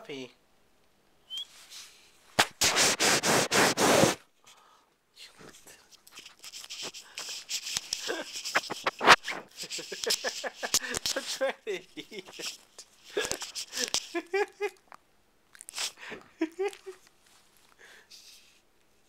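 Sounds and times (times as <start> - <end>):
loud rustling burst: 2.4 - 4.2, 6.7 - 11.4
rubbing with sharp clicks: 2.4 - 4.3, 5.8 - 14.2.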